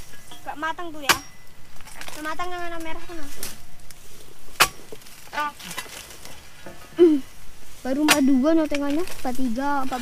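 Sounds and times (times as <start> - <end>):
chisel chopping palm stalk: 1.0 - 2.2, 4.5 - 6.3, 8.0 - 9.2.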